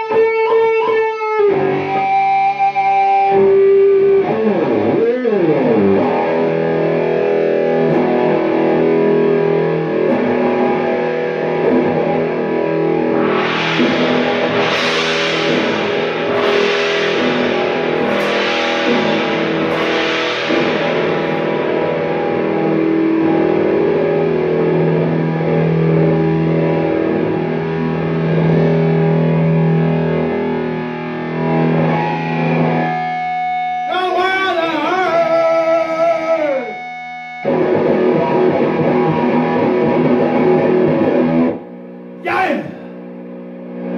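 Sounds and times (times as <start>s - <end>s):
distorted electric guitar: 0.0s - 43.9s
sharp crash-like hits: 11.7s - 23.3s.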